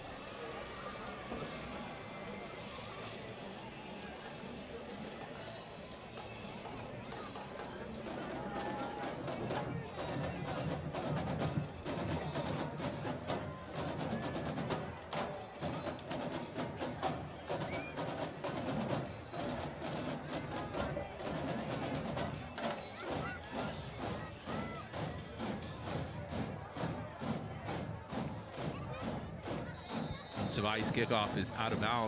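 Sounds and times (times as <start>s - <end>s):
crowd noise: 0.0s - 32.0s
drumline drums playing: 6.6s - 32.0s.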